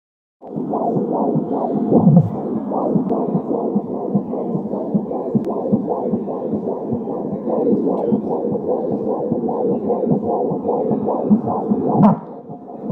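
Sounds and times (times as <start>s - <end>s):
fetal heartbeat whooshing pulses: 0.4s - 12.9s.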